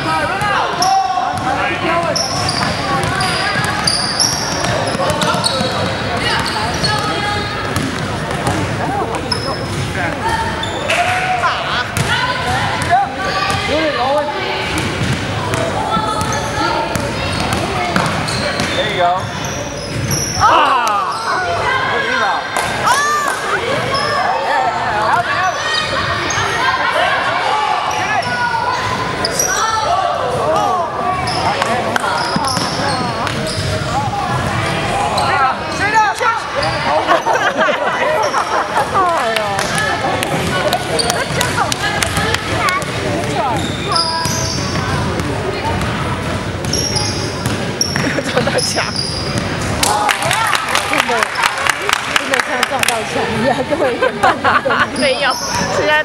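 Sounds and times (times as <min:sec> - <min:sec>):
players calling out: 0:00.0 - 0:51.5
shoe squeaks: 0:02.1 - 0:07.3, 0:09.2 - 0:10.9, 0:16.0 - 0:20.4, 0:25.4 - 0:26.7, 0:27.9 - 0:29.8, 0:31.2 - 0:33.9, 0:40.9 - 0:41.4, 0:43.4 - 0:45.0, 0:46.6 - 0:49.6, 0:54.9 - 0:55.9.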